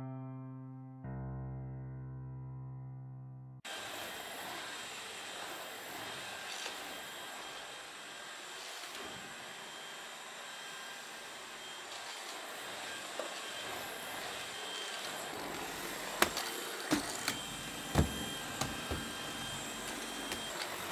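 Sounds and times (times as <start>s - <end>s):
vacuum cleaner running: 3.7s - 20.9s.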